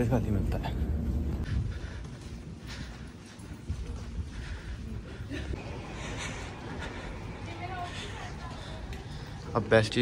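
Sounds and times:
quick footsteps: 0.8s - 9.5s.

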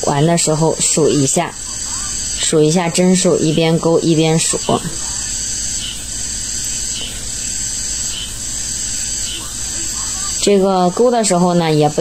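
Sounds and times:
low hum: 0.0s - 12.0s
steady background hiss: 0.0s - 12.0s.

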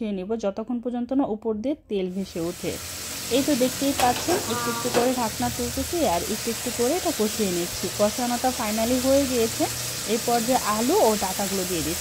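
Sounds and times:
food sizzling in a wok: 2.1s - 12.0s
person speaking: 3.4s - 7.0s.

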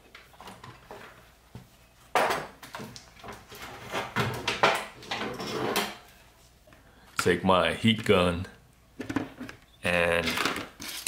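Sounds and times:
tools knocking and clattering: 2.1s - 6.0s.

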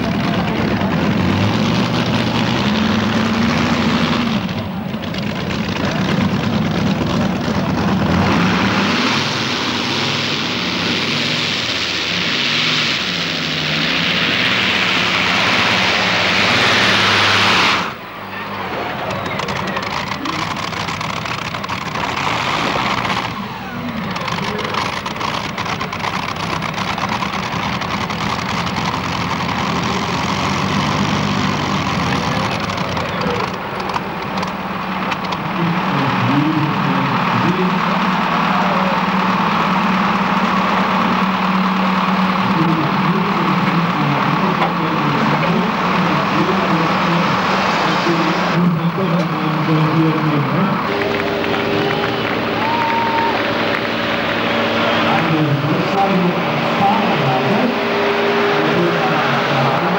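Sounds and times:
tractor engine under load: 0.0s - 59.9s.

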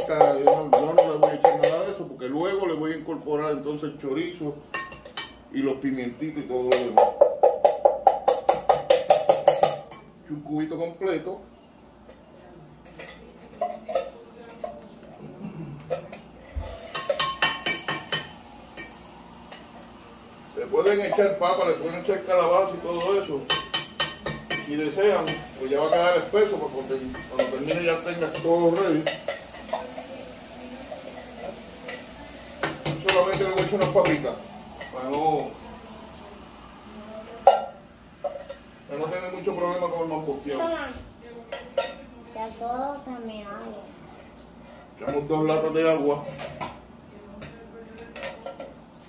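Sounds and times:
metal utensil knocking on cookware: 0.0s - 1.8s, 6.7s - 10.1s
faint steady hum: 0.0s - 41.5s.

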